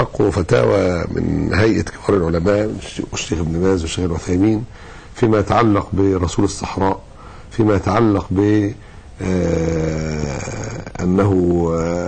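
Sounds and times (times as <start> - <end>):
man's drawn-out aah: 9.2 - 12.0.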